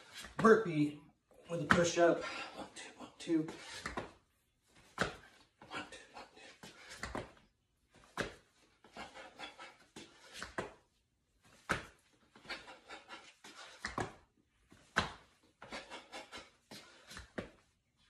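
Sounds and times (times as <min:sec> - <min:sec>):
hands and feet thudding on tiles: 0:01.5 - 0:02.4, 0:03.5 - 0:05.8, 0:06.4 - 0:17.8
person panting hard: 0:01.8 - 0:04.1, 0:05.0 - 0:07.4, 0:08.8 - 0:10.8, 0:12.3 - 0:14.2, 0:15.5 - 0:17.6.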